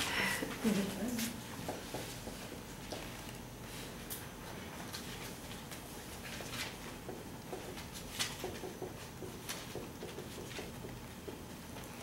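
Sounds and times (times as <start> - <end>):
marker writing on whiteboard: 1.6 - 2.6, 7.0 - 11.4.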